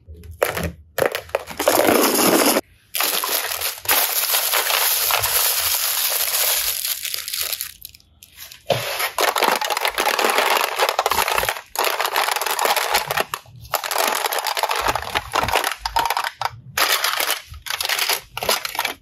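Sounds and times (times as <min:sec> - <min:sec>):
plastic containers clattering: 0:00.1 - 0:19.0.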